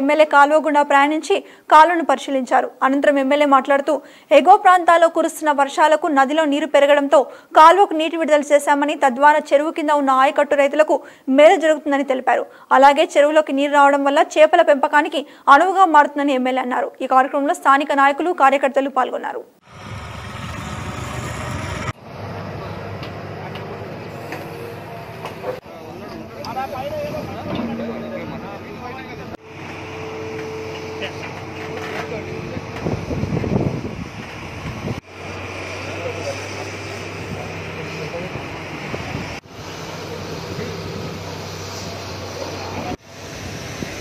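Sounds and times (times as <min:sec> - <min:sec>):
excavator diesel engine running: 0:19.6 - 0:32.8
wind buffeting microphone: 0:32.4 - 0:35.0.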